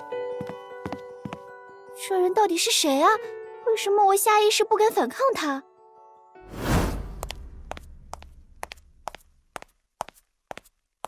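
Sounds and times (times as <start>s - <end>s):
hard-soled footsteps: 6.9s - 10.8s.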